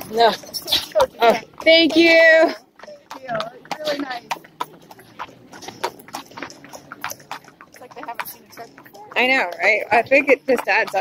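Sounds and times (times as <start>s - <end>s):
horse hooves clopping on pavement: 0.0s - 11.0s.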